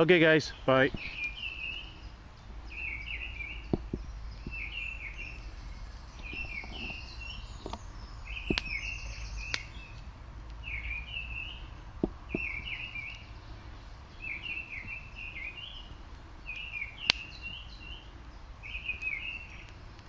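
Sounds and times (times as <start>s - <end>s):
songbird singing: 0.0s - 20.0s
wood fire popping: 0.0s - 20.0s.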